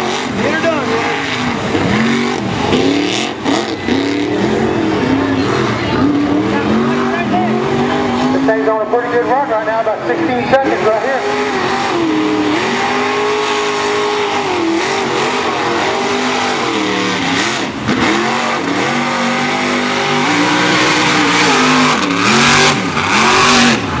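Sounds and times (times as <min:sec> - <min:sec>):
engine revving hard: 0:00.0 - 0:24.0.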